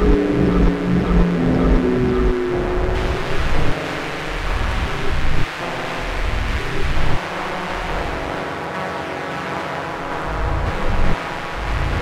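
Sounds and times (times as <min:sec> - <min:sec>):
dense noisy electronic rumble: 0:00.0 - 0:12.0.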